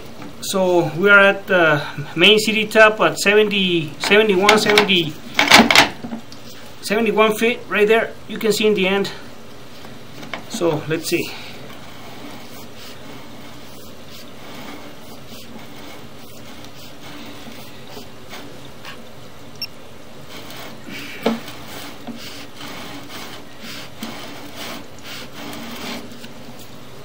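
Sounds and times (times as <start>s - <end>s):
cable rubbing and rasping: 10.2s - 19.0s, 20.2s - 26.8s.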